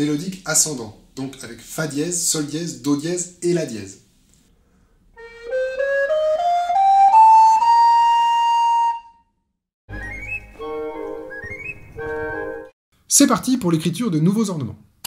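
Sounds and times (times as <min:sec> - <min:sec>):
recorder playing a scale: 0:05.2 - 0:09.2, 0:09.9 - 0:12.7.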